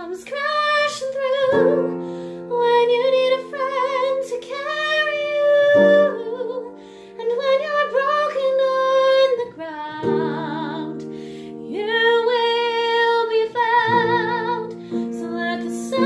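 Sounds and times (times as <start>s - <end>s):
piano chords: 0.0s - 16.0s
woman singing a slow ballad: 0.0s - 16.0s.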